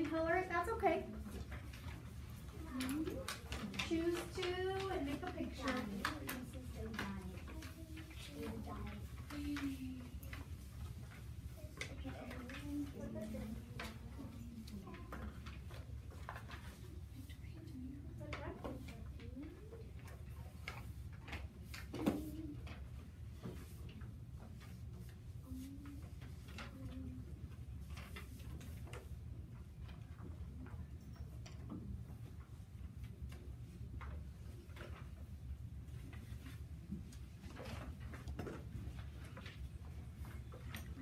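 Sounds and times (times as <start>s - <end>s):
low room hum: 0.0s - 41.0s
pencils tapping on desks: 0.0s - 41.0s.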